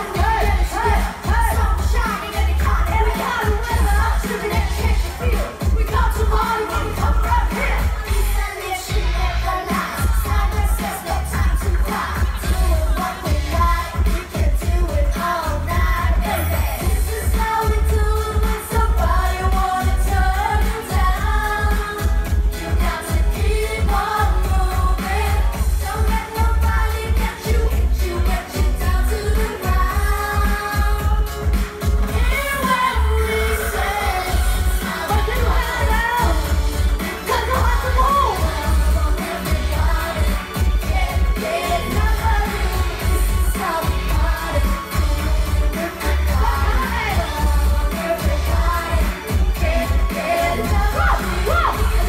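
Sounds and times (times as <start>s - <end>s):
heavy bass beat: 0.0s - 52.0s
vocals singing a melody: 0.0s - 52.0s.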